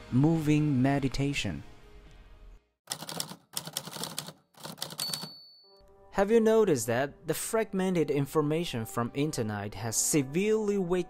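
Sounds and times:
typewriter keys clacking: 0:02.9 - 0:05.5.

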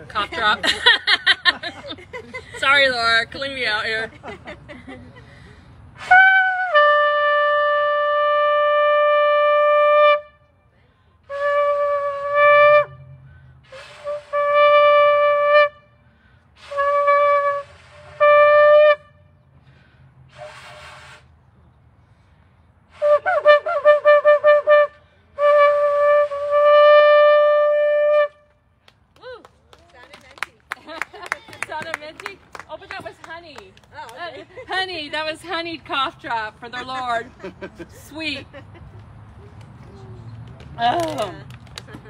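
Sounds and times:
shofar blown in long note: 0:06.0 - 0:10.4, 0:11.3 - 0:16.0, 0:16.6 - 0:19.3, 0:23.0 - 0:28.4.

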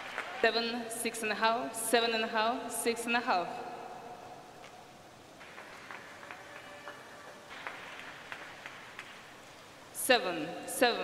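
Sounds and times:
indoor hall ambience: 0:00.0 - 0:11.0
scattered claps: 0:05.4 - 0:09.4.

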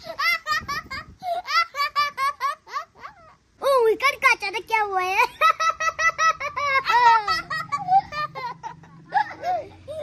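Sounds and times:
child laughing: 0:00.0 - 0:03.4, 0:05.0 - 0:10.0.

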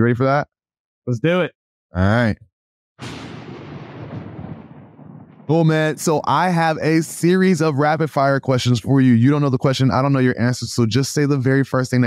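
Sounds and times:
boom sound effect: 0:03.0 - 0:06.3.

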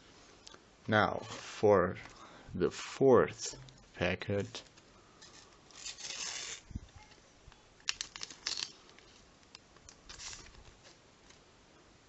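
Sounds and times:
wrapper being torn open: 0:05.7 - 0:06.6, 0:07.8 - 0:11.4
sharp crinkling clicks: 0:07.8 - 0:11.4
soft rustle of wrapper: 0:07.8 - 0:11.5.

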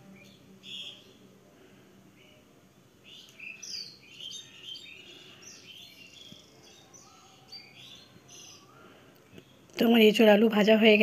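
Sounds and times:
small birds chirping: 0:00.0 - 0:11.0.

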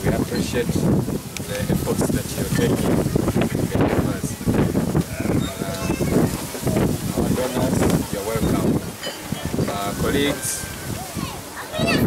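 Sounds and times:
man speaking: 0:09.6 - 0:10.7.

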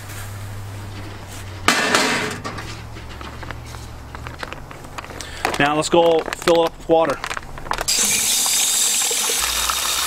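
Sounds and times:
salt grains pouring into bucket: 0:07.9 - 0:10.0.

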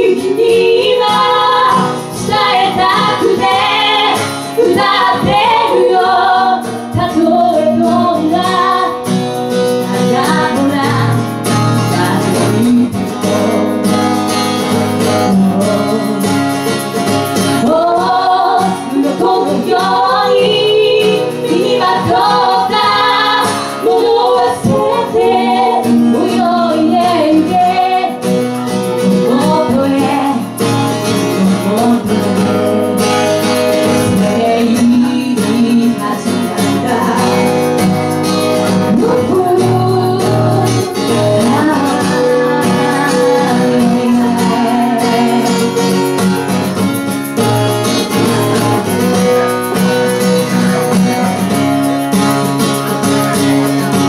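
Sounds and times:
woman singing into microphone: 0:00.0 - 0:14.0, 0:15.0 - 0:16.8, 0:17.4 - 0:28.4, 0:29.0 - 0:33.2, 0:33.8 - 0:37.9, 0:38.6 - 0:46.2
guitar: 0:00.0 - 0:54.0.

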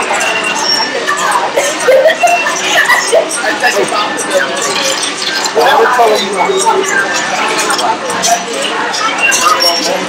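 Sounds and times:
toy robot electronic beeps: 0:00.0 - 0:10.0
voices: 0:00.0 - 0:10.0.

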